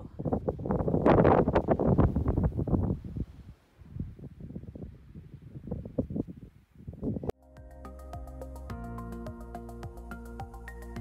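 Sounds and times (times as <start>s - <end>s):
wind buffeting microphone: 0.0s - 7.4s.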